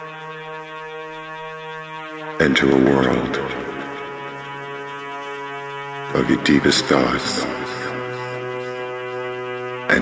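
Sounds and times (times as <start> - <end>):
sustained electronic drone: 0.0 - 10.0.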